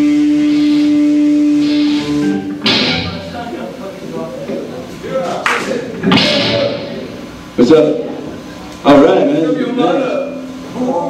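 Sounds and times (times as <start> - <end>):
rock band playing: 0.0 - 4.1, 6.0 - 7.4
cymbal crash: 1.6 - 3.5, 6.0 - 7.3.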